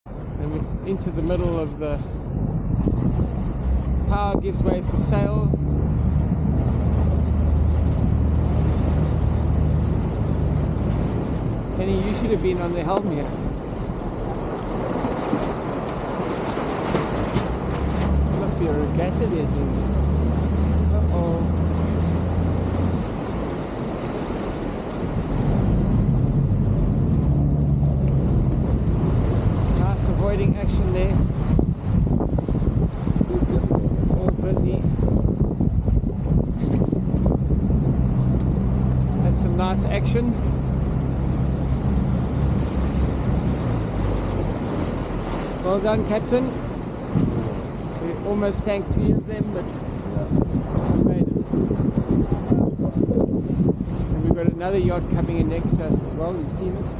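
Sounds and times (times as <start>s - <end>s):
water rushing along hull: 0.0s - 56.9s
wind on microphone: 0.0s - 56.9s
boat engines running: 0.2s - 56.9s.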